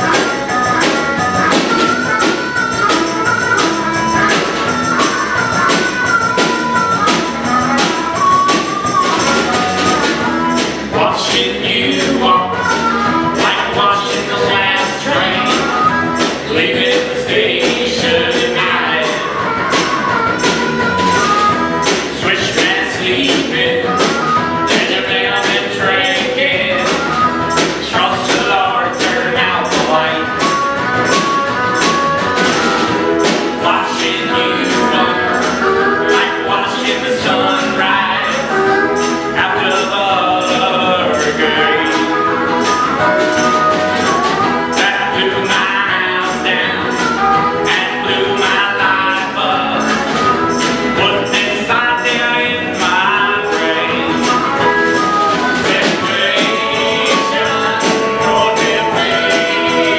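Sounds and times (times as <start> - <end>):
person singing: 0.0 - 32.4, 33.0 - 59.9
harmonica melody notes: 0.0 - 59.9
strummed acoustic guitars: 0.0 - 59.9
tambourine beat: 0.0 - 59.9.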